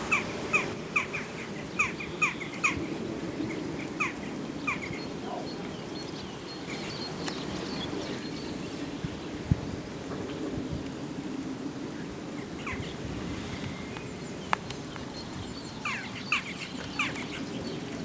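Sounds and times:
small birds chirping: 0.0 - 9.5, 13.6 - 18.0
low outdoor background noise: 0.0 - 18.0.

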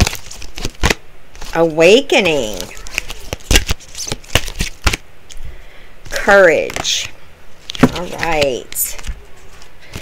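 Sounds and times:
cards being shuffled: 0.0 - 5.4, 6.6 - 10.0.

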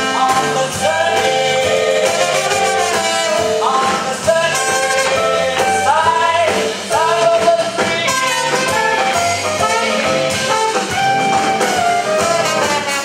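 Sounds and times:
up-tempo swing jazz band: 0.0 - 13.0.

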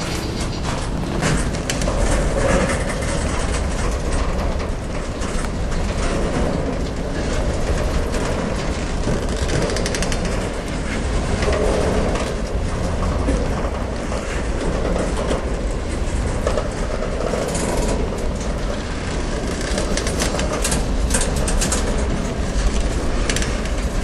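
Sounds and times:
freight train wheels rumbling: 0.0 - 24.0
train wheels clicking and clacking: 0.0 - 24.0.

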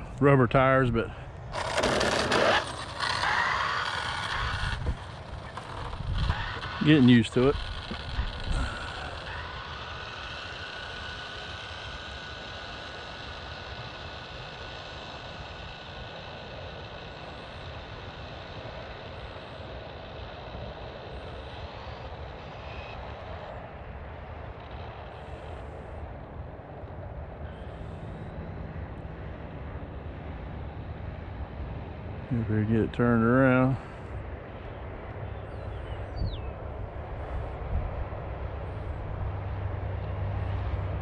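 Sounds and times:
faint high whine: 0.0 - 41.0
wind rumble on microphone: 0.8 - 41.0.

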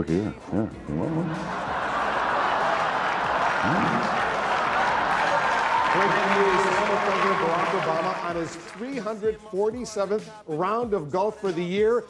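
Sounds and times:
man speaking: 0.0 - 1.5, 3.6 - 4.2
audience applauding: 1.7 - 9.1.

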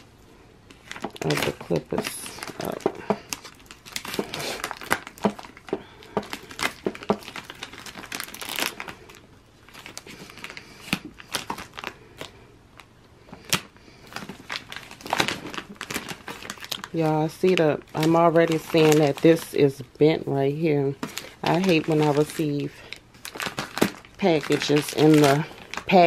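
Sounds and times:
plastic bag crinkling and tearing: 0.7 - 26.0.

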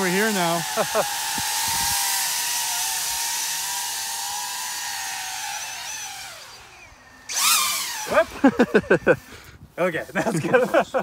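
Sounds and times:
drone propellers whining: 0.0 - 9.4.

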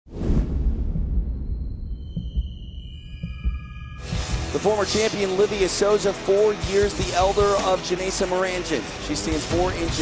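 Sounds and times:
low pulsing rumble: 0.1 - 4.0
heavy thuds: 0.4 - 4.0
high ringing tones: 1.3 - 4.4.

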